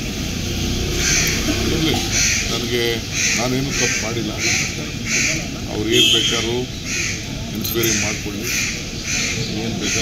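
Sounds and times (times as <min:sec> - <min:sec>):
crows cawing: 0:00.9 - 0:06.0, 0:06.7 - 0:10.0
crowd murmuring: 0:01.0 - 0:10.0.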